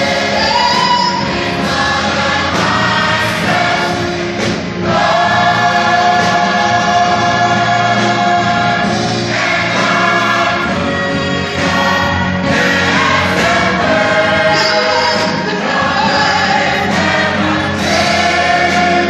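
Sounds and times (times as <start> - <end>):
choir singing gospel: 0.0 - 19.0.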